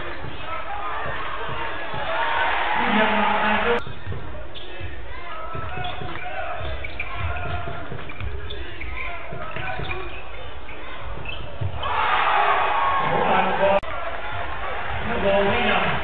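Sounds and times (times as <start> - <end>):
crowd noise: 0.0 - 16.0
voices in a large hall: 0.0 - 16.0.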